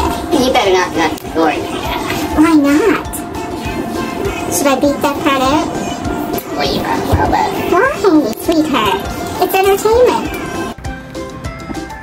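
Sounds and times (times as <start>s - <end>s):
music with held notes: 0.0s - 12.0s
woman's wordless voice: 6.4s - 10.4s.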